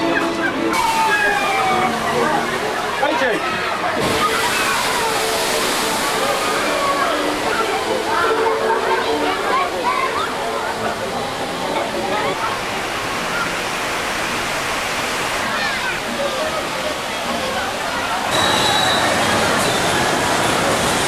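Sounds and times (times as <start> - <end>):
people's voices: 0.0 - 21.0
water rushing and splashing: 0.0 - 21.0.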